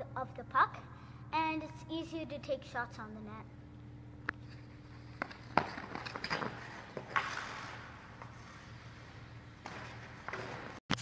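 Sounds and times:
steady low hum: 0.0 - 11.0
skate blades scraping ice: 4.4 - 10.8.

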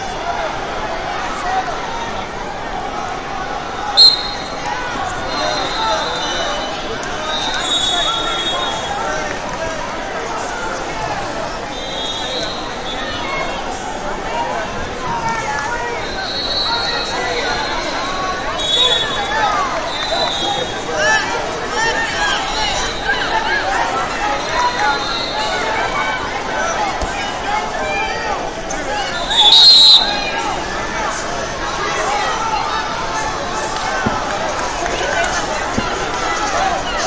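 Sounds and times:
crowd chatter and shouts: 0.0 - 37.0
referee's whistle blast: 4.0 - 4.6, 11.7 - 13.0, 18.6 - 20.7, 29.3 - 30.4
short high whistle tones: 4.0 - 4.6, 29.3 - 30.4.

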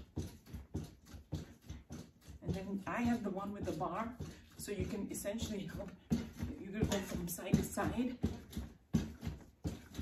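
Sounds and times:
trampoline bounce thuds: 0.0 - 10.0.

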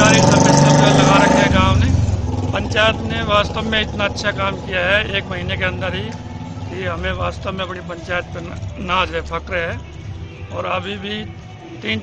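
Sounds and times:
man talking: 0.0 - 2.0, 2.6 - 9.9, 10.5 - 12.0
vehicle engine rumble: 0.0 - 12.0.

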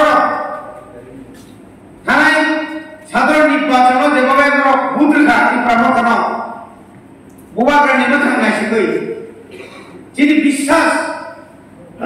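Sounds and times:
man speaking into a microphone: 2.0 - 6.7, 7.5 - 9.3, 10.1 - 12.0.

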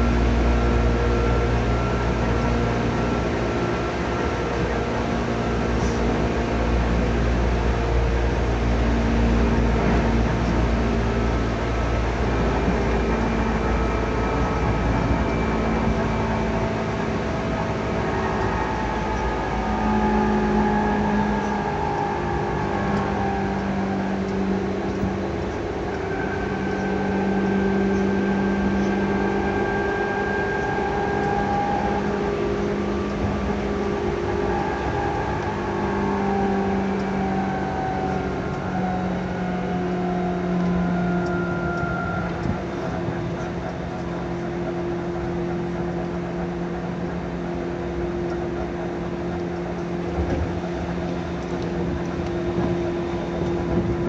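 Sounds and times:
deep rumble: 0.0 - 54.0
traction motor whine: 0.0 - 54.0
train rolling noise: 0.0 - 54.0.

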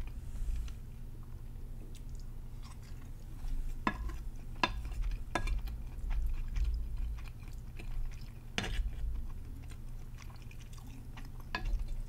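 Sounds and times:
close-up chewing: 1.2 - 12.0.

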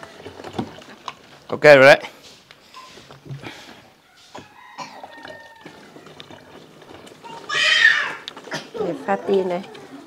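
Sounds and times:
juice pouring into plastic bottle: 0.0 - 1.6, 5.0 - 8.7
loud high-pitched cry: 7.3 - 8.3.

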